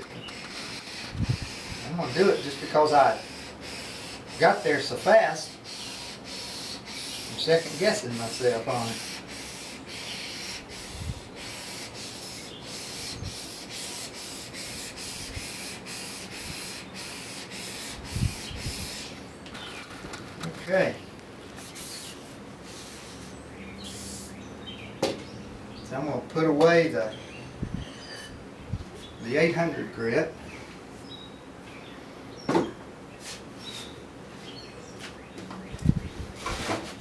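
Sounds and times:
blade scraping on whetstone: 0:00.0 - 0:10.7.

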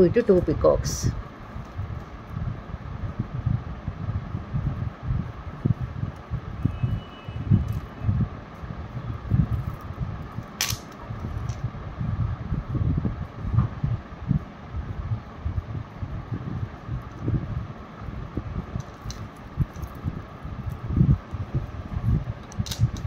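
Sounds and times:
faint steady hum: 0:00.0 - 0:23.0
wind buffeting microphone: 0:00.0 - 0:23.0
sharp click: 0:10.6 - 0:11.0.

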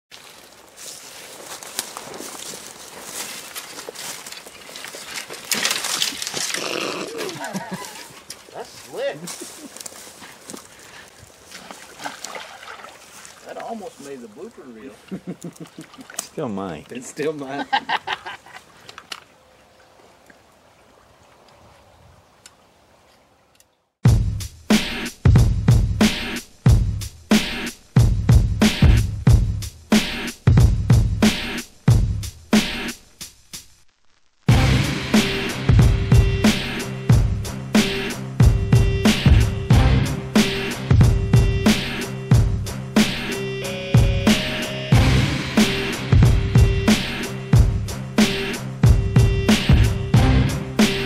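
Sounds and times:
twigs snapping: 0:00.1 - 0:08.7, 0:09.3 - 0:12.4
foot slipping on muddy bank: 0:00.1 - 0:14.2
footsteps crunching dry leaves: 0:00.1 - 0:15.1.

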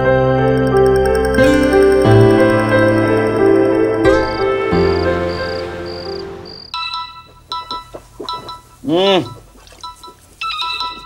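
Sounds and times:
piano music: 0:00.0 - 0:07.7
phone ringtone chime notes: 0:00.4 - 0:08.6.

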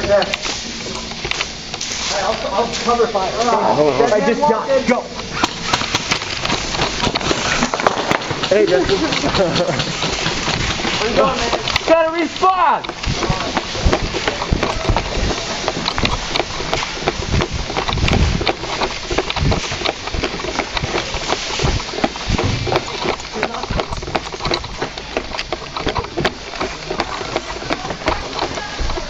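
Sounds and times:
footsteps: 0:00.0 - 0:29.0
gear rattling: 0:00.0 - 0:29.0
pellets hitting surfaces: 0:05.4 - 0:29.0.

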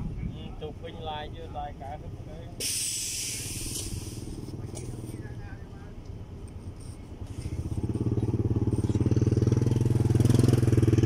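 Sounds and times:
low engine rumble: 0:00.0 - 0:11.0
loud hiss: 0:02.6 - 0:04.4.

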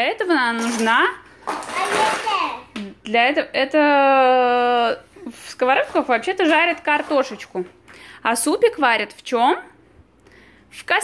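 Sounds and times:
small child speaking: 0:01.7 - 0:02.8.

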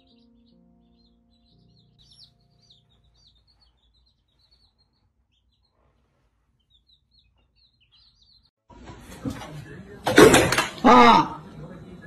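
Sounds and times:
baby chicks peeping: 0:00.0 - 0:12.0.

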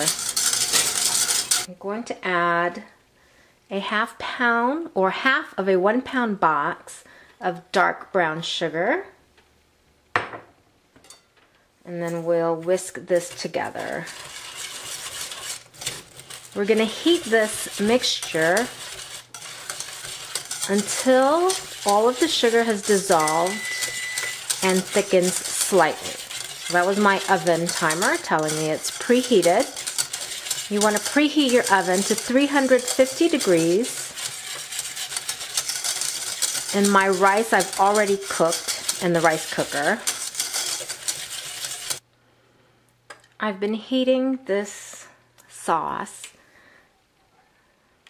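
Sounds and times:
whisk scraping a saucepan: 0:00.0 - 0:01.7, 0:12.0 - 0:42.0.

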